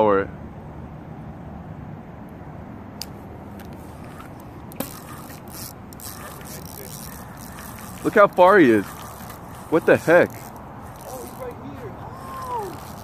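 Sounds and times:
outdoor background noise: 0:00.0 - 0:13.0
scraping rustles: 0:03.7 - 0:13.0
fishing reel click: 0:04.0 - 0:11.6, 0:12.2 - 0:13.0.

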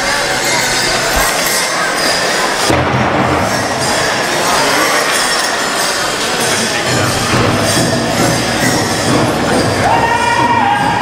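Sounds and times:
drum: 0:06.8 - 0:11.0.

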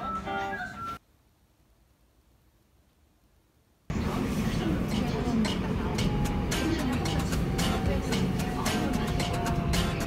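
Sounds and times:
noisy ambient sound: 0:00.0 - 0:10.0
background music melody: 0:04.8 - 0:10.0.

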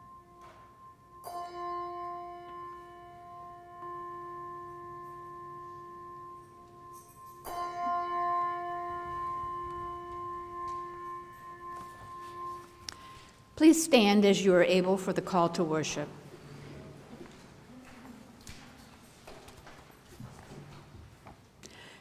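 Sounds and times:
large brass handbell ringing: 0:00.0 - 0:13.6.

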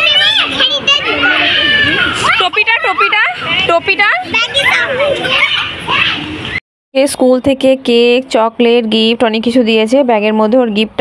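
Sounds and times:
young children chattering: 0:00.0 - 0:06.2.

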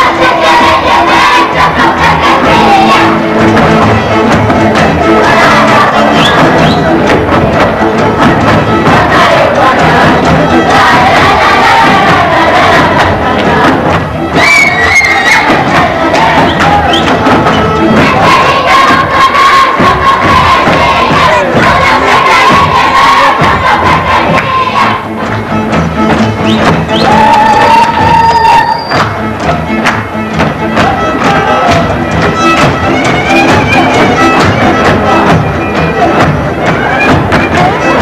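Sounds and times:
folk band fiddle and double bass: 0:00.0 - 0:18.8, 0:24.6 - 0:38.0
dancers shouting and whooping: 0:27.0 - 0:28.9.

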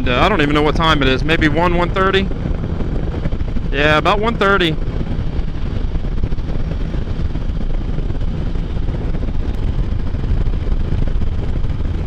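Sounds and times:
motorcycle engine drone: 0:00.0 - 0:12.0
wind rush on microphone: 0:00.0 - 0:12.0.

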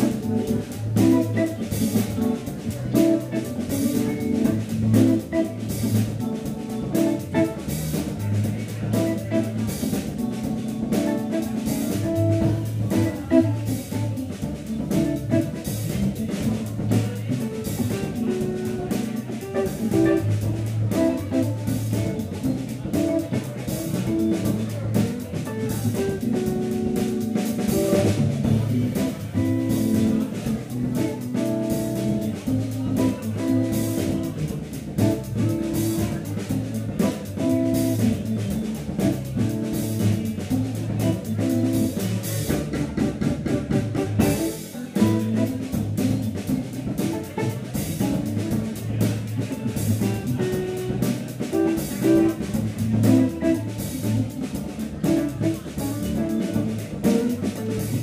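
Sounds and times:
drum kit: 0:00.0 - 0:58.0
electric guitar: 0:00.0 - 0:58.0.

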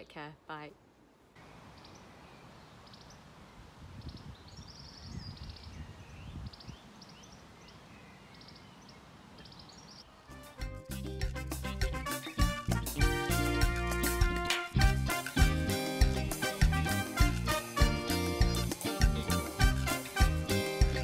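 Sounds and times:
small birds chirping and trilling: 0:01.4 - 0:10.1
music: 0:10.3 - 0:21.0.

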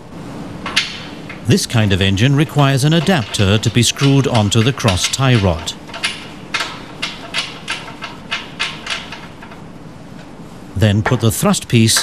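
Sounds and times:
faint background noise: 0:00.0 - 0:12.0.

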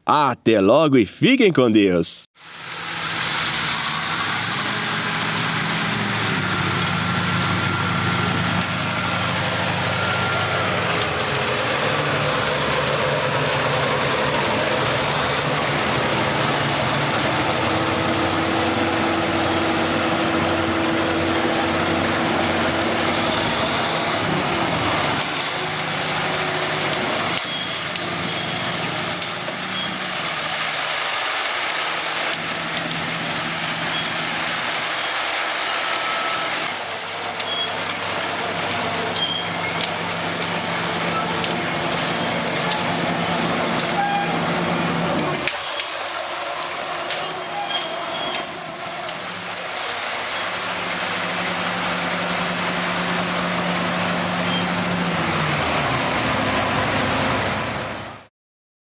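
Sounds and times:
bulldozer diesel engines running: 0:02.4 - 0:58.2
steel tracks moving: 0:02.5 - 0:58.0
thin high squeals: 0:27.1 - 0:30.0, 0:35.8 - 0:50.6.

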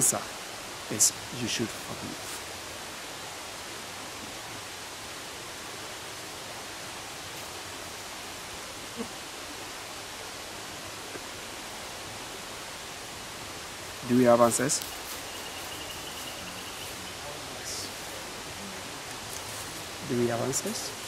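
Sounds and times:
outdoor background hiss: 0:00.0 - 0:21.0.

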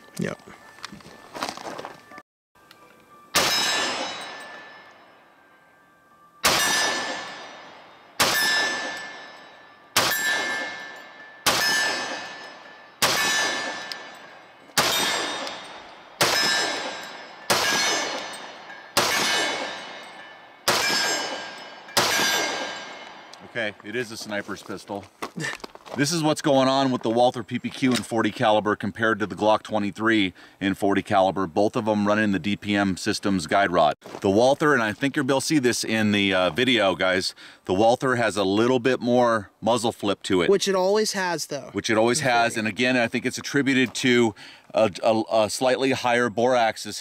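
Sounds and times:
steel target ringing: 0:03.2 - 0:23.5
pistol shots: 0:03.4 - 0:04.7, 0:06.4 - 0:23.4.

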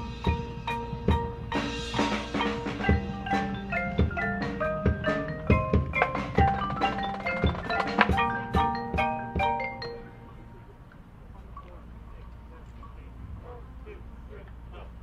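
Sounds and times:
marimbas and xylophones melody: 0:00.0 - 0:13.6.

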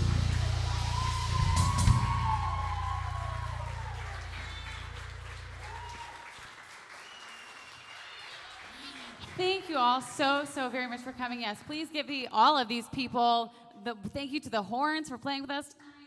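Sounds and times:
audience applauding: 0:00.0 - 0:11.8.

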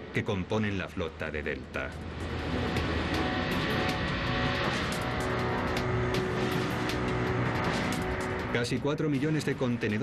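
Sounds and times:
background music: 0:00.0 - 0:10.0
heavy vehicles droning: 0:01.7 - 0:09.9.

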